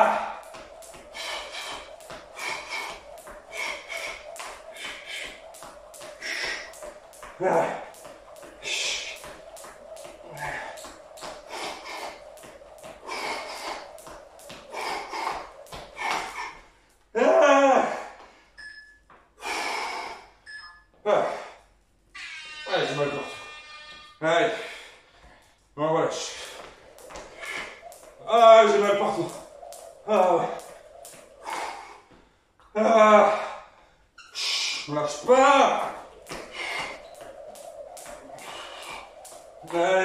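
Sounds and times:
skipping rope slapping tile floor: 0:00.0 - 0:17.1, 0:26.2 - 0:32.2, 0:34.7 - 0:40.0.

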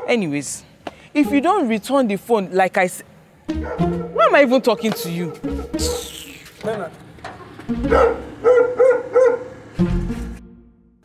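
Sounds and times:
dog barking: 0:03.6 - 0:06.2, 0:07.9 - 0:09.6.

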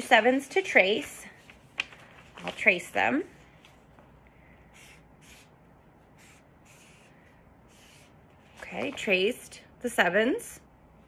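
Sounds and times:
marker scratching on paper: 0:04.6 - 0:08.6.

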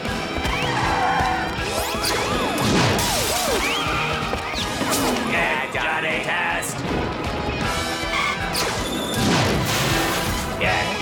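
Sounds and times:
fast background music: 0:00.0 - 0:11.0.

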